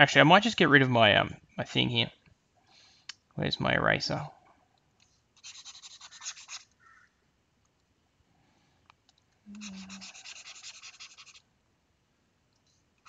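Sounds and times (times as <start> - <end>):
stylus scrubbing on drawing tablet: 5.4 - 6.7, 9.6 - 11.4.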